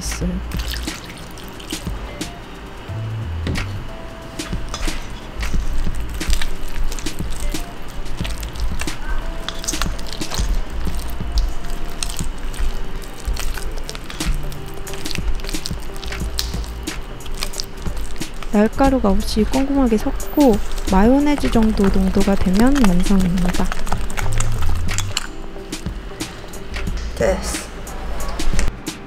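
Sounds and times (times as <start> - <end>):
background music: 0.0 - 29.0
spatula stirring wet paste: 4.2 - 25.3.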